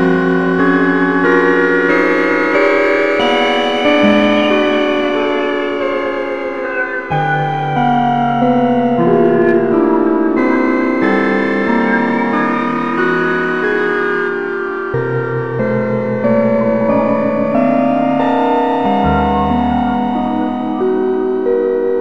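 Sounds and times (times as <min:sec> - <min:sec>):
dark ambient keyboard music: 0:00.0 - 0:22.0.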